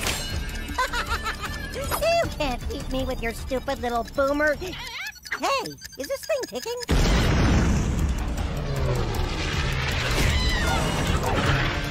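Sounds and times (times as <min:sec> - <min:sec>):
cartoon explosion rumbling blast: 0:06.9 - 0:08.1.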